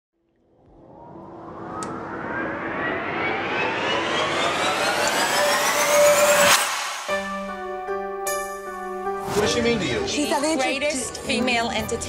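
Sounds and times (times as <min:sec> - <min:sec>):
whooshing riser with rising tones: 0:00.5 - 0:08.4.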